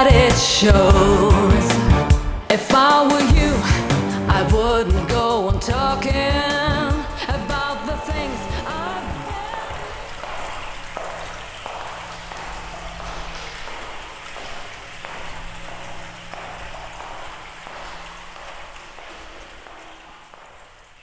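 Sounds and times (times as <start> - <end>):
crackling rain-like noise: 6.9 - 21.0.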